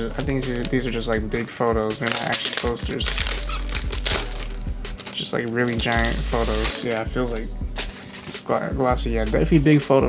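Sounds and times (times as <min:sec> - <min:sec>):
plastic sleeve crinkling: 0:00.0 - 0:08.8.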